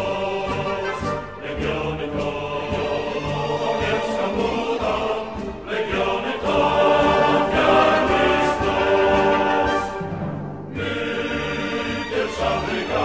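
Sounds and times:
choir singing held chords: 0.0s - 13.0s.

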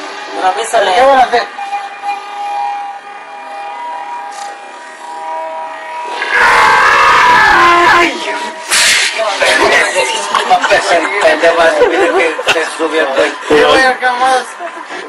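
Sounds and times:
loud distorted shouting: 6.1s - 10.0s
short sharp crack: 8.7s - 9.2s
men talking: 9.2s - 15.0s.

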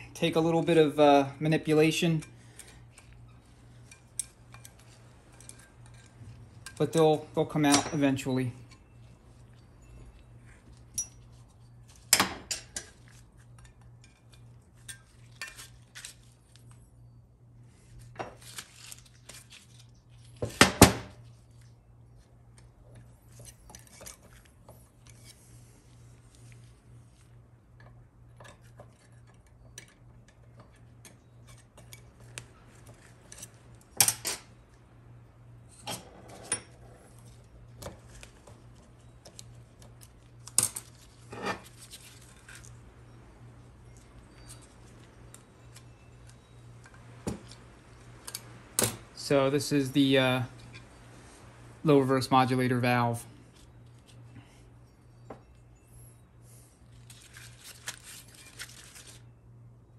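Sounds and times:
steady low hum: 0.0s - 59.9s.

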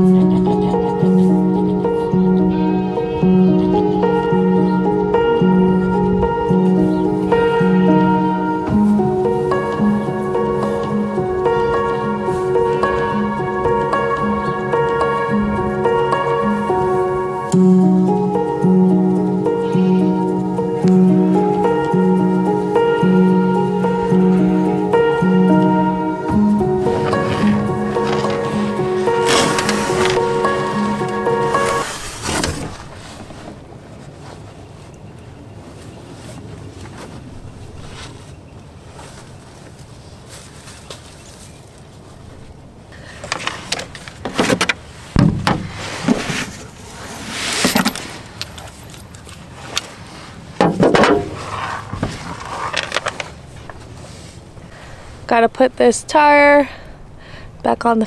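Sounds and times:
soft guitar music: 0.0s - 32.0s
quiet outdoor background: 0.0s - 58.0s
knocks and clunks of wheel: 43.2s - 46.6s, 50.6s - 53.8s.

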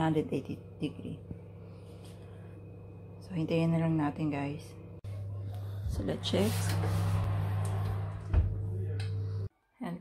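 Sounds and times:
low hum: 0.0s - 9.5s.

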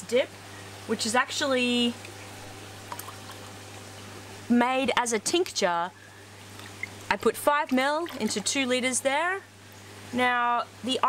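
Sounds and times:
steady low hum: 0.0s - 11.0s
liquid pouring into water: 2.0s - 4.2s, 6.4s - 8.5s.

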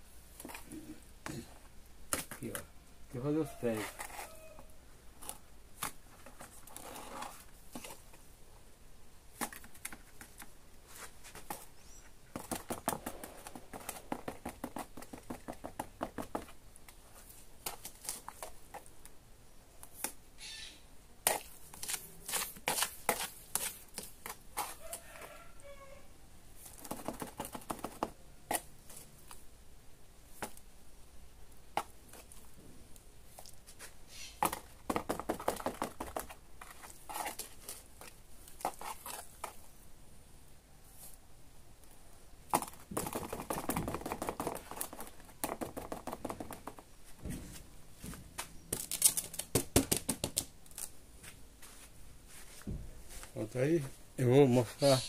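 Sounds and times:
trowel scraping mortar: 21.2s - 25.0s.

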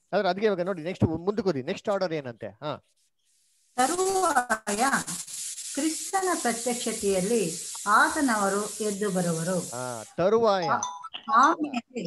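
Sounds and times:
loud steady hiss: 3.8s - 10.2s
person talking: 5.9s - 12.0s.

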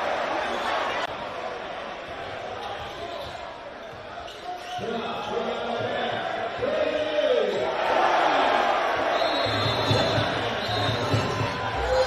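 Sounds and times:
crowd noise in a gym: 0.0s - 12.0s.

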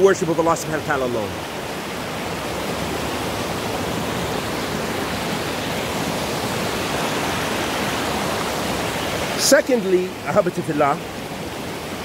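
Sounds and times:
creek rushing over rocks: 0.0s - 12.0s.

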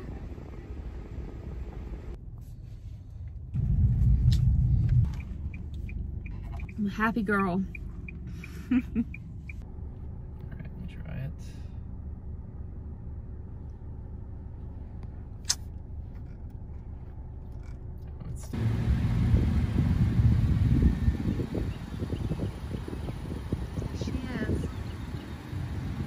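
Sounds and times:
car engine idling: 0.0s - 26.0s
wind rumbling on microphone: 3.5s - 5.6s, 18.4s - 26.0s.

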